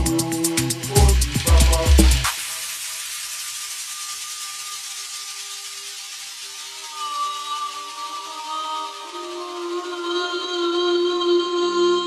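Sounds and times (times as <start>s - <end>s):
hissing noise wash: 0.0s - 11.6s.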